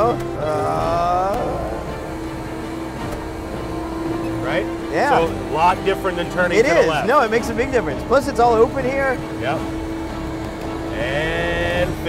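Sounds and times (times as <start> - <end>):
constant tone: 0.0 - 12.0
ice resurfacer engine rumble: 0.0 - 12.0.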